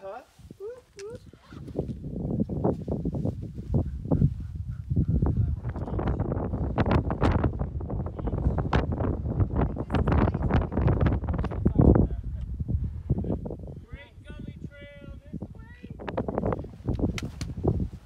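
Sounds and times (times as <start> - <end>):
wind buffeting microphone: 0.4 - 18.0.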